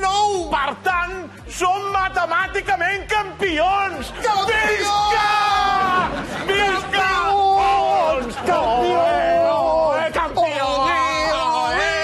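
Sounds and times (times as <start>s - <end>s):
man yelling high-pitched: 3.2s - 12.0s.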